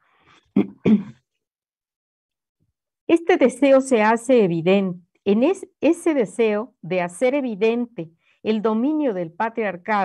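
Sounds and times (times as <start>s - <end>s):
woman clearing her throat: 0.5s - 1.3s.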